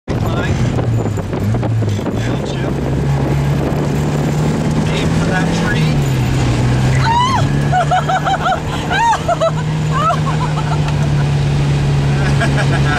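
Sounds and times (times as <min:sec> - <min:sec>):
car engine pulling hard: 0:00.1 - 0:12.9.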